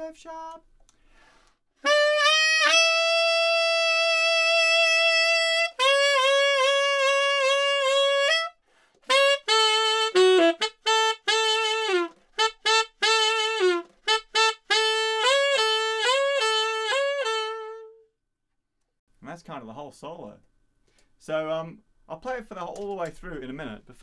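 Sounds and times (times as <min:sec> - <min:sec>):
tenor saxophone playing: 0:01.8 - 0:18.2.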